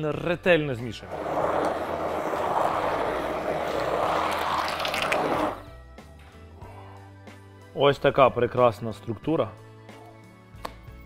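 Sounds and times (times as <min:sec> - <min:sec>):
immersion blender running: 0:01.1 - 0:05.6.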